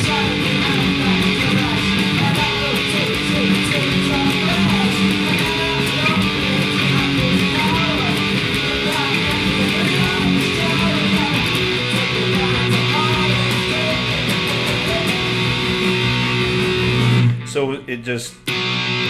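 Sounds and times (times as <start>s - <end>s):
bass and drums: 0.0s - 17.7s
electric guitar strumming: 0.0s - 19.0s.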